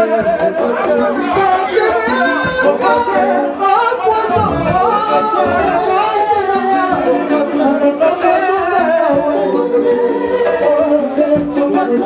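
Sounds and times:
man singing into a microphone: 0.0s - 12.0s
music with a steady beat: 0.0s - 12.0s.

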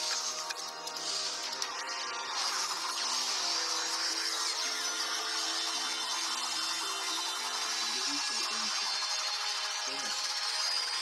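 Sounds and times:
sci-fi energy hiss: 0.0s - 10.7s.

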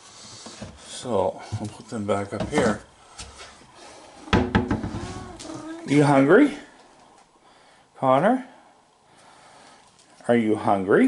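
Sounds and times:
sharp knock: 4.3s - 5.0s
cupboard door shutting: 4.3s - 5.6s.

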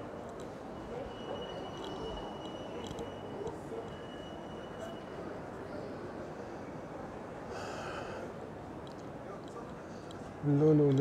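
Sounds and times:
shopping mall ambience: 0.0s - 11.0s.

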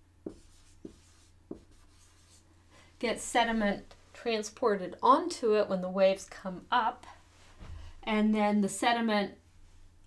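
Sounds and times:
marker writing on whiteboard: 0.2s - 2.5s.

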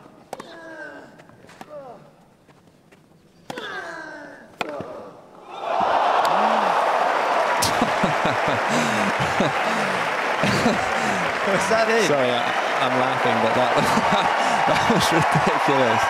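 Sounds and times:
crowd cheering and applauding: 5.5s - 16.0s
player grunting: 6.2s - 6.9s.

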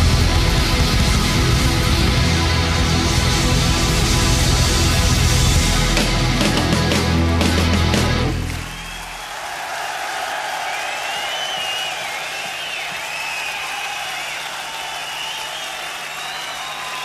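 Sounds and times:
audience applauding and cheering: 6.2s - 17.0s.

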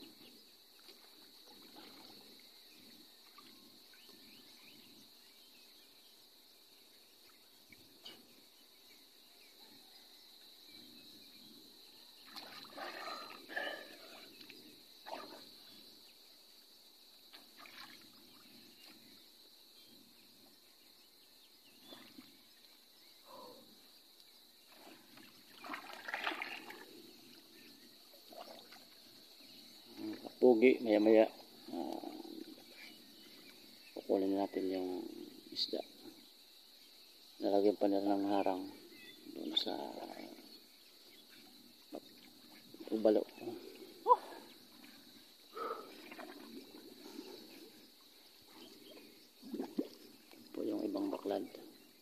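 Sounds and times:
water splashing and sloshing: 0.0s - 5.0s, 12.1s - 16.1s, 17.1s - 19.3s, 21.7s - 22.9s, 24.5s - 30.4s, 39.3s - 52.0s
voice: 39.4s - 40.4s, 42.9s - 44.2s, 50.6s - 51.6s.

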